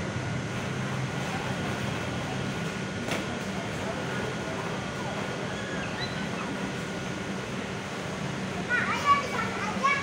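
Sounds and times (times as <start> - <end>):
air conditioning hum: 0.0 - 10.0.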